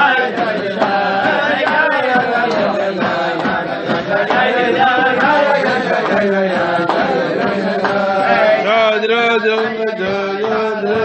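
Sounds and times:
group singing: 0:00.0 - 0:11.0
sharp beats: 0:00.0 - 0:11.0.

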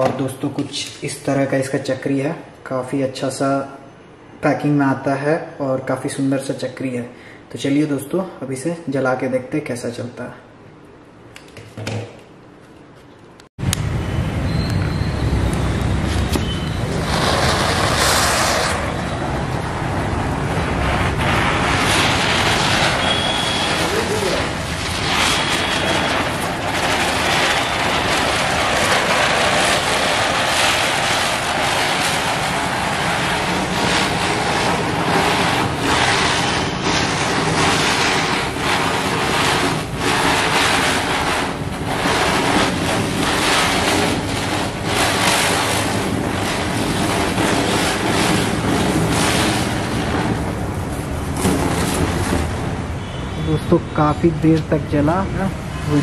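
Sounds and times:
spinning firework hissing: 0:13.8 - 0:56.0.

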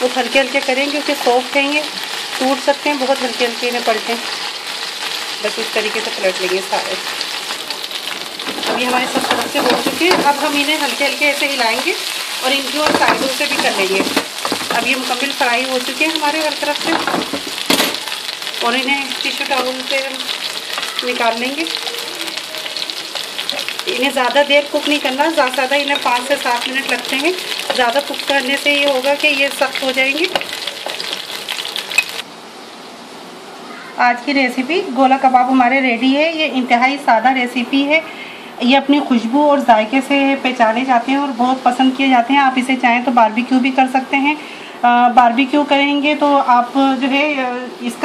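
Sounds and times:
meat sizzling in oil: 0:00.0 - 0:32.3.

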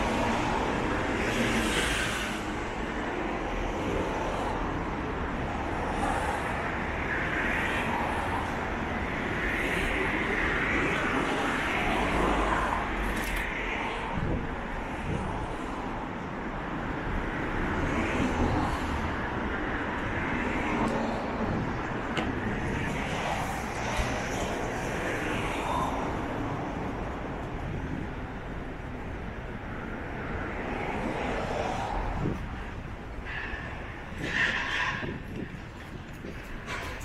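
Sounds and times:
city road traffic: 0:00.0 - 0:37.0.

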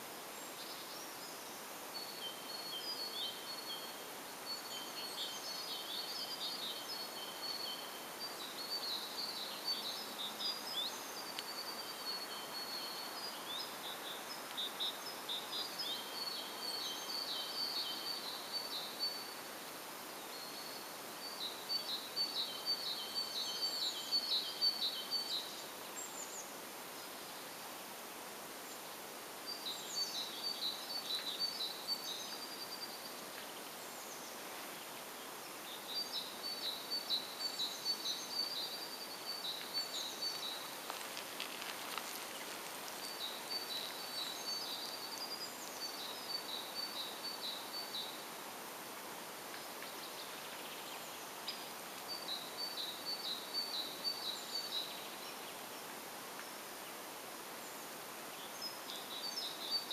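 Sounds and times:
faint outdoor hiss: 0:00.0 - 0:59.9
small bird singing: 0:00.4 - 0:19.4, 0:20.2 - 0:27.6, 0:29.5 - 0:48.3, 0:49.6 - 0:57.0, 0:57.6 - 0:59.9.

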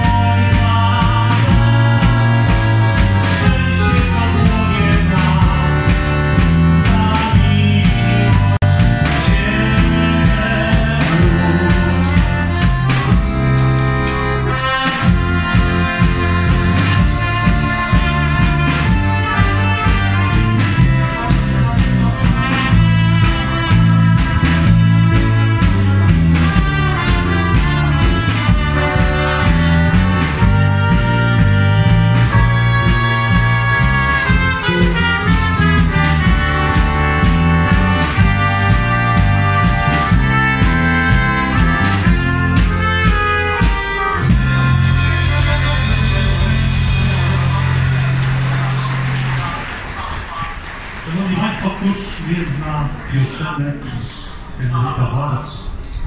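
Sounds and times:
acoustic guitar strumming: 0:00.0 - 0:50.8
trumpet: 0:00.0 - 0:51.8
accordion: 0:00.0 - 0:52.1
bass line: 0:00.0 - 0:53.6
drums keeping steady beat: 0:00.0 - 0:53.6.

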